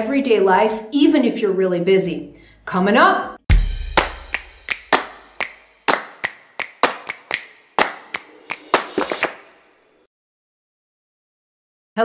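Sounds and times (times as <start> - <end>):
sharp percussive claps with echo: 3.5 - 9.8.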